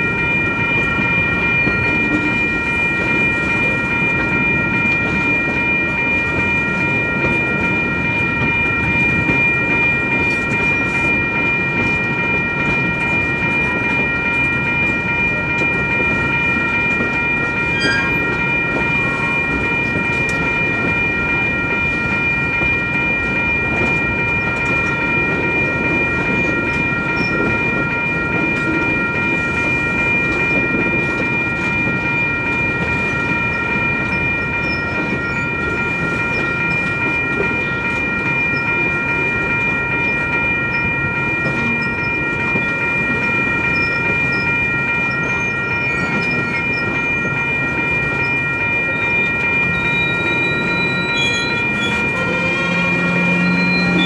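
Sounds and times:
high-pitched ringing tones: 0.0 - 54.0
train wheels rumbling on rails: 0.0 - 54.0.

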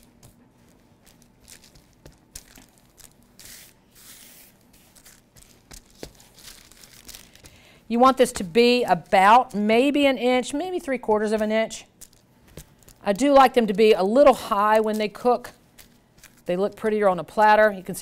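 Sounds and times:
paper crinkling under hands: 0.6 - 9.9, 11.9 - 13.7, 14.7 - 16.5.

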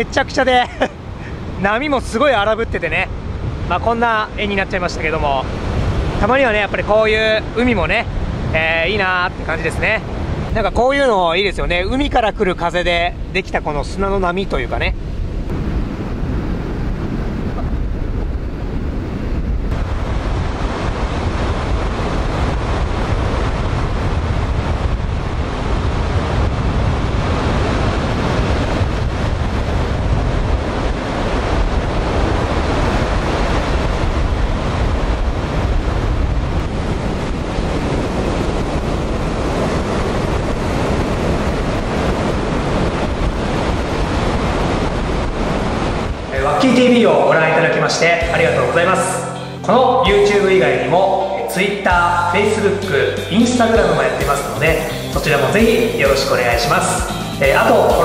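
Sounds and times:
wind buffeting microphone: 0.0 - 49.4
surf breaking on beach: 15.0 - 49.4, 51.2 - 58.0.

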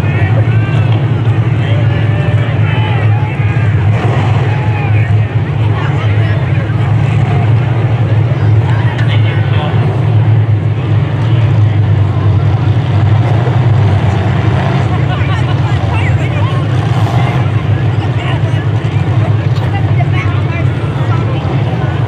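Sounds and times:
car engines droning: 0.0 - 22.0
voices chattering: 0.0 - 22.0.

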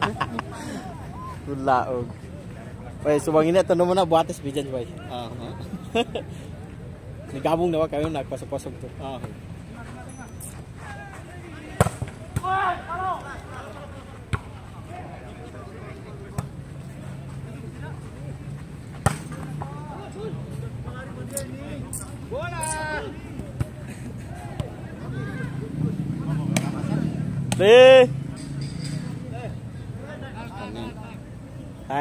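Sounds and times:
players shouting: 10.8 - 18.3, 19.1 - 28.2.

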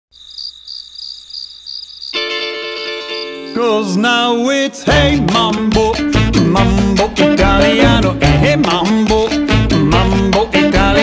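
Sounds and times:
crickets chirping: 0.1 - 3.9.

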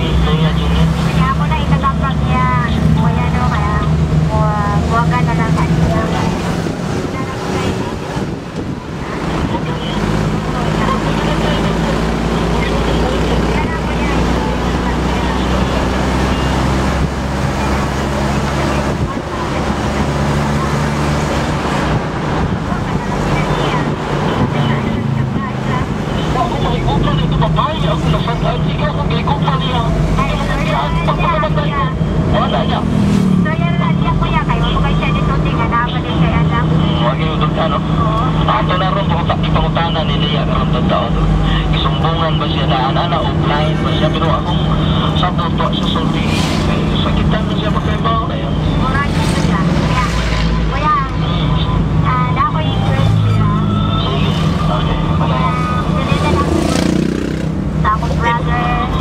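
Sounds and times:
car engine running: 0.0 - 59.0
people talking: 0.0 - 59.0
road noise: 0.0 - 59.0.

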